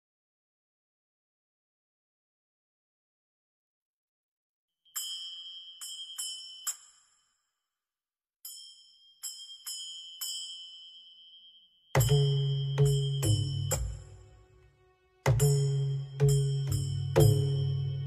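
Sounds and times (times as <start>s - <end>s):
high bell chimes: 4.9s - 7.5s, 8.5s - 14.4s, 15.3s - 18.0s.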